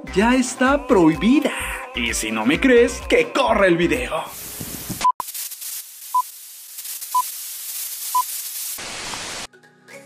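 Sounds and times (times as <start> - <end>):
film projector hiss: 4.3 - 9.5.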